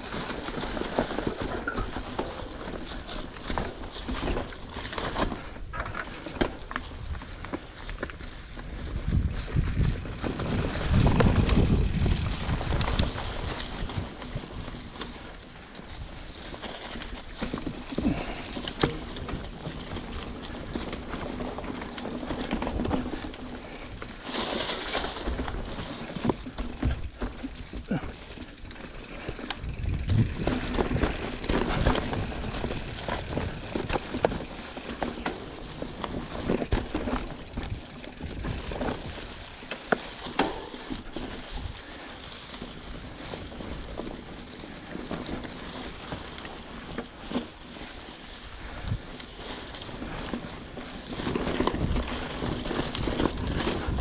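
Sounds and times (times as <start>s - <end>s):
bike clicks and knocks: 0.0s - 54.0s
tyres crunching through dry leaves: 0.0s - 54.0s.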